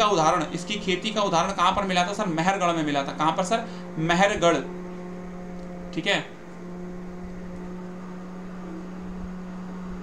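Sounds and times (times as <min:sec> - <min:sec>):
low-pitched hum: 0:00.0 - 0:10.0.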